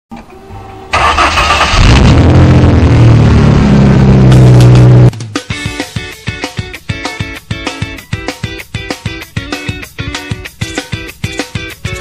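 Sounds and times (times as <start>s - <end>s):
truck engine starting and running: 0.1s - 5.2s.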